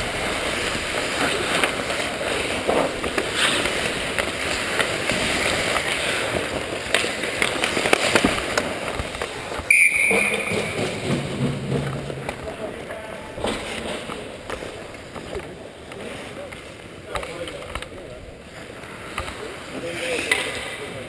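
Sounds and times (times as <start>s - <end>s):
skate blades scraping ice: 0.0s - 9.7s
hockey sticks and puck clacking: 0.4s - 21.0s
players' voices: 9.1s - 21.0s
referee's whistle: 9.7s - 10.9s
sharp knock: 9.7s - 12.4s.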